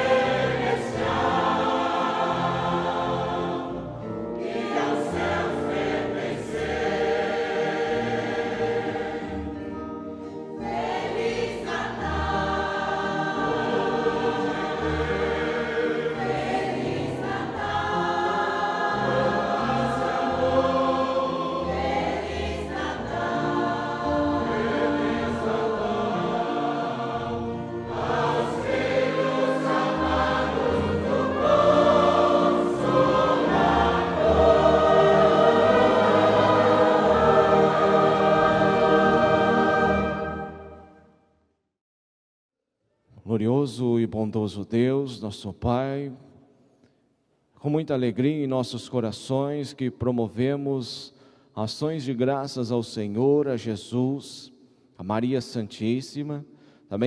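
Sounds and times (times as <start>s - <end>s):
choir singing a hymn: 0.0s - 41.0s.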